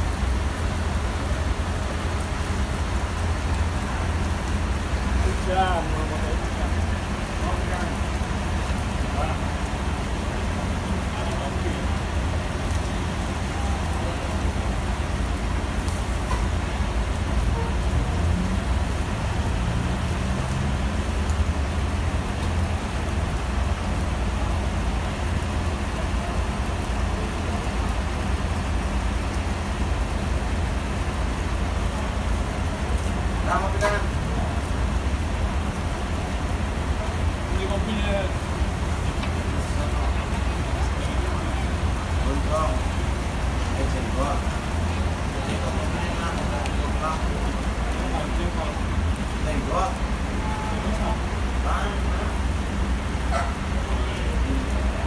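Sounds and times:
constant low rumble: 0.0s - 55.0s
steady rain on wet pavement: 0.0s - 55.0s
distant voices: 0.1s - 55.0s.

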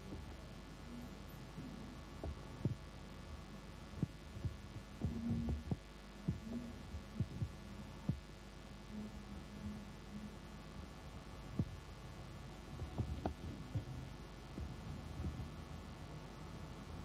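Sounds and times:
steady low hum: 0.0s - 17.0s
soft low knocks and thumps: 4.0s - 8.2s, 12.8s - 14.0s.

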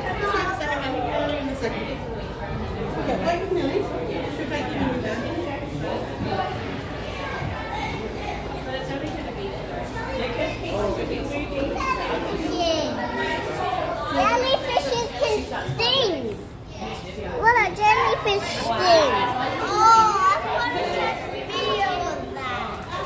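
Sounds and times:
children chattering and calling out: 0.0s - 23.0s.

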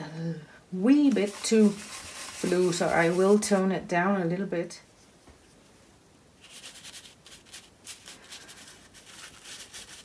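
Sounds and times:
paintbrush scrubbing on paper: 1.1s - 3.7s, 6.4s - 10.0s.

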